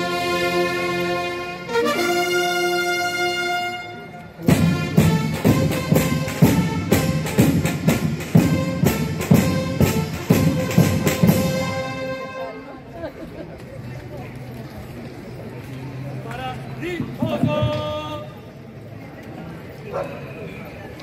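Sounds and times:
military brass band playing: 0.0s - 12.9s
drum and cymbal beats: 4.4s - 12.1s.

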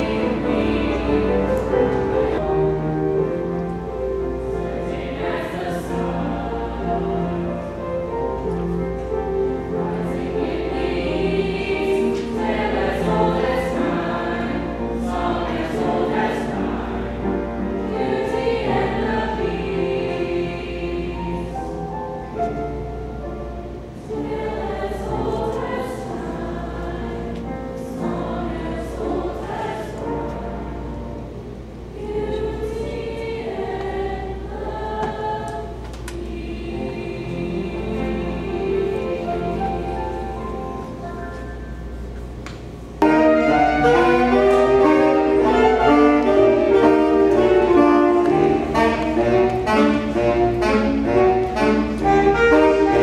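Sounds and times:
choir singing held chords: 0.0s - 42.0s, 43.0s - 53.0s.

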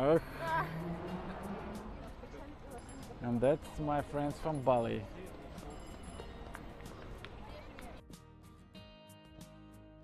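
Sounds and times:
indistinct voices of passers-by: 0.0s - 8.1s
faint background music: 0.0s - 10.0s.

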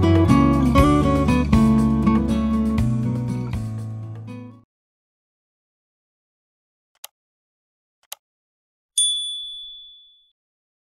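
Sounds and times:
notification bell ding: 9.0s - 10.3s.

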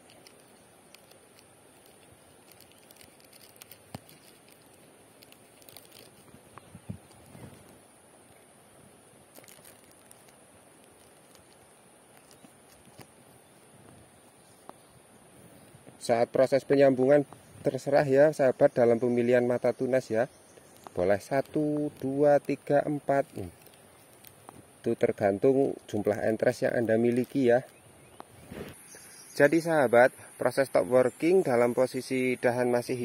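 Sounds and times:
plastic bag crinkling: 0.0s - 7.8s, 9.2s - 13.4s, 20.6s - 24.6s, 25.9s - 27.8s
small clicks and crackles: 0.0s - 8.5s, 9.1s - 14.9s, 17.1s - 29.0s.

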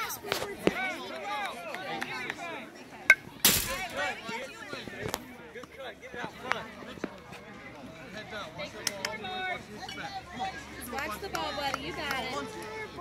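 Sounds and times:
chatter of children and spectators: 0.0s - 13.0s.

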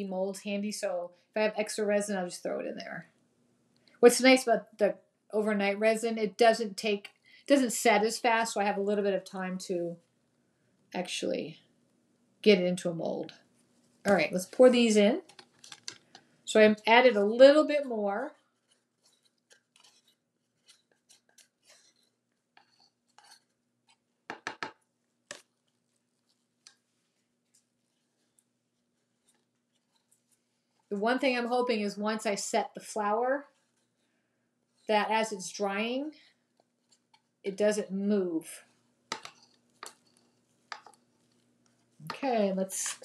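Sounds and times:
wooden stick scraping plastic cups: 13.2s - 16.4s, 17.1s - 31.0s, 33.4s - 35.0s, 36.2s - 37.4s, 38.6s - 43.0s
wooden stick clicking on plastic cup: 24.3s - 25.5s, 39.1s - 41.0s.

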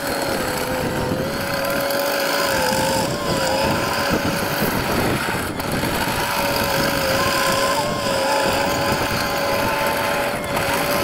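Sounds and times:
track loader diesel engine: 0.0s - 11.0s.

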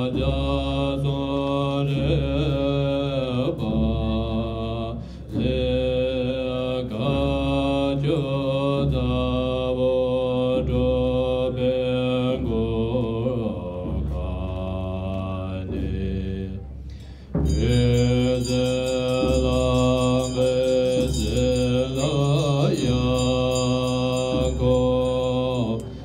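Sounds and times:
monks chanting: 0.0s - 26.0s.

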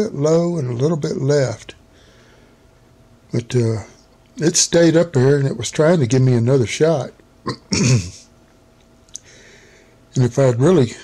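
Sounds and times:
man clearing throat: 7.4s - 8.3s.

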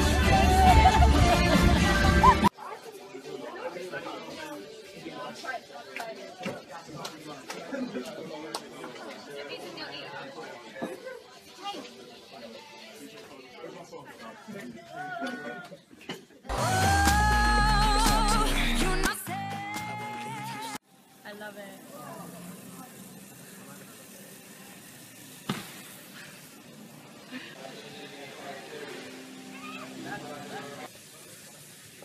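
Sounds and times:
voices chattering: 0.0s - 16.6s, 20.2s - 32.0s
steady background noise: 20.2s - 32.0s.

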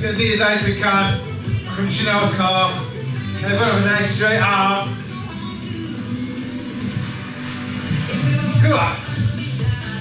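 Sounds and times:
workout music: 0.0s - 10.0s.

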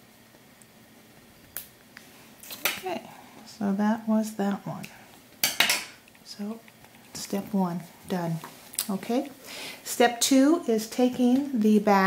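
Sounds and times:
person speaking: 6.2s - 12.0s.

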